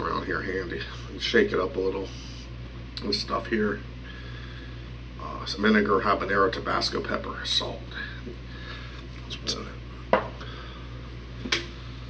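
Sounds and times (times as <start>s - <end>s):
bottle knocking on hard surface: 10.1s - 10.4s.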